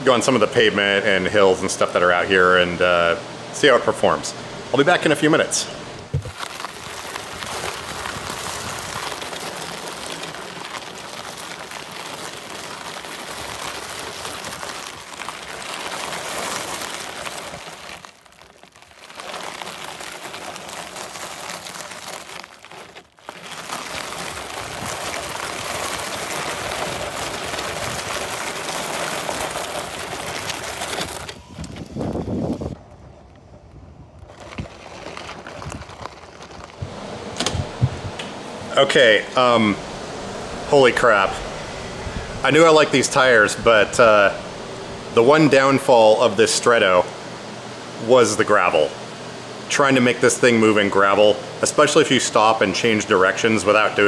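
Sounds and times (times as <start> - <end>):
gravel crunching under wheels: 4.8 - 54.0.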